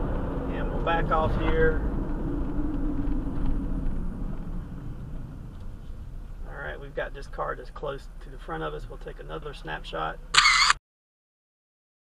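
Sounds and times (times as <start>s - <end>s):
van road and engine rumble: 0.0s - 10.7s.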